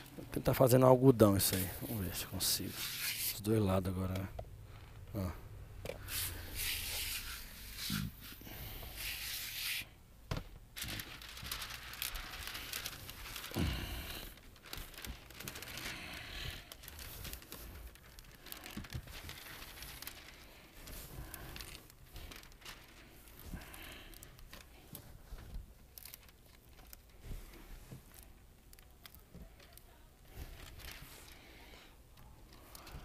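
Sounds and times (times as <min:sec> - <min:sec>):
plastic film crinkling: 0:00.0 - 0:04.8, 0:06.0 - 0:33.0.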